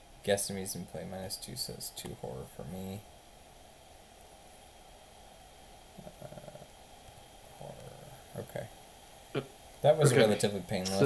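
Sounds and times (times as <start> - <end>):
microphone hiss and hum: 0.0 - 11.0
person saying uh: 6.0 - 6.7, 9.4 - 11.0.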